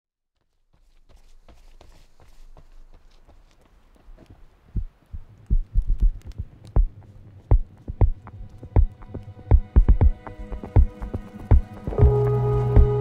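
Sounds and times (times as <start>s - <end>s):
held musical chord: 10.2s - 13.0s.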